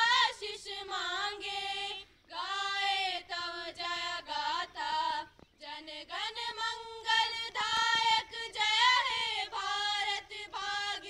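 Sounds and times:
high voices singing together: 0.0 - 11.0.

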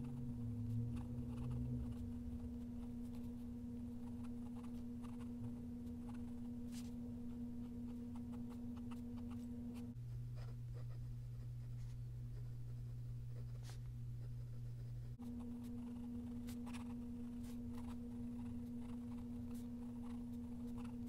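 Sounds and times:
steady low hum: 0.0 - 21.0
pen nib scratching paper: 0.6 - 6.9, 7.6 - 21.0.

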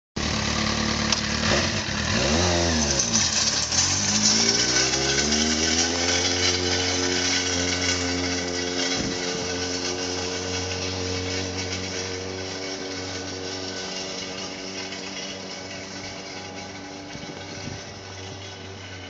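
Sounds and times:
motorcycle engine revving: 0.2 - 19.0.

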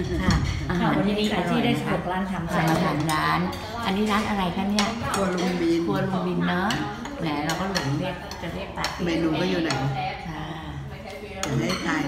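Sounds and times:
people talking: 0.0 - 12.0
cutlery clinking on plates: 2.5 - 10.0, 11.1 - 12.0.

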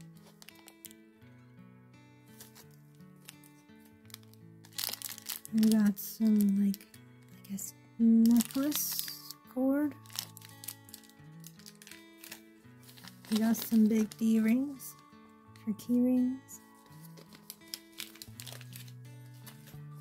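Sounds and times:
plastic bags crinkling: 0.0 - 1.0, 2.4 - 7.4, 8.2 - 15.0, 16.7 - 20.0
background music of held notes: 0.0 - 20.0.

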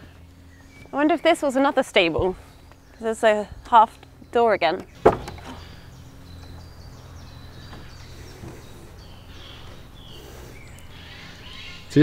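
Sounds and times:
faint bird chirps: 5.2 - 12.0.

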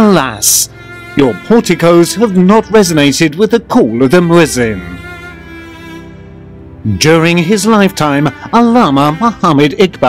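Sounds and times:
sustained bowed string chord: 0.0 - 10.0.

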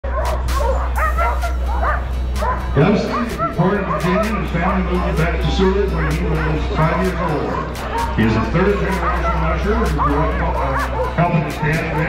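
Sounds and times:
sled dogs yipping and whining: 0.1 - 12.0.

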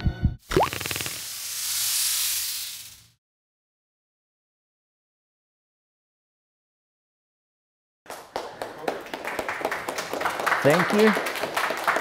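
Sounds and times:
upward-gliding blip: 0.5 - 1.2
whoosh of hiss: 0.7 - 3.2.

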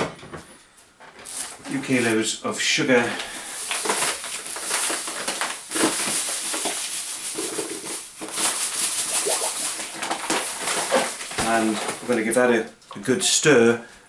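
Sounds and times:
paper bag crinkling: 1.1 - 2.4, 3.0 - 12.5
sugar pouring into plastic bucket: 3.4 - 12.2.

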